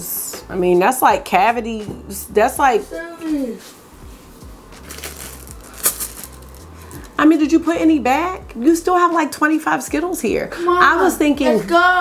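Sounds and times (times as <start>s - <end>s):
candies clicking in bag: 4.8s - 7.2s
plastic bag crinkling: 4.8s - 7.2s.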